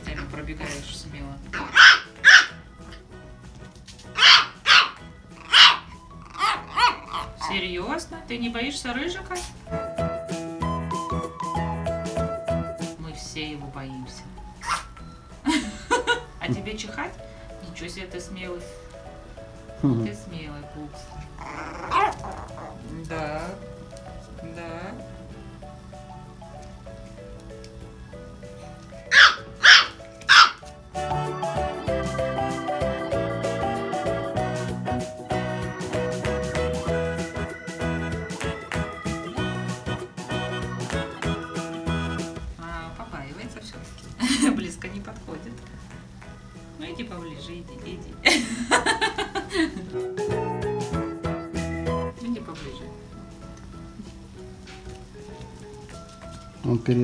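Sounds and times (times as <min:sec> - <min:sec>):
background music: 0:00.0 - 0:57.0
puppy barking: 0:01.5 - 0:03.0, 0:04.1 - 0:07.6, 0:14.6 - 0:15.0, 0:21.4 - 0:22.8, 0:29.1 - 0:30.7.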